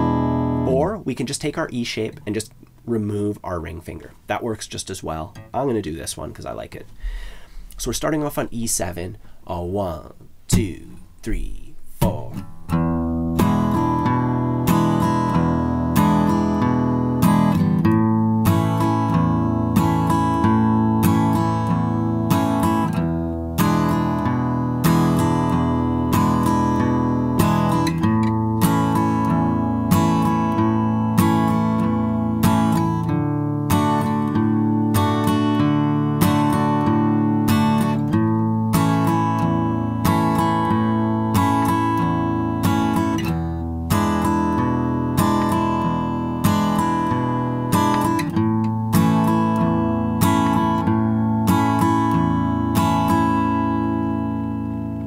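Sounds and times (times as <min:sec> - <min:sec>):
acoustic guitar strumming: 0:00.0 - 0:55.0.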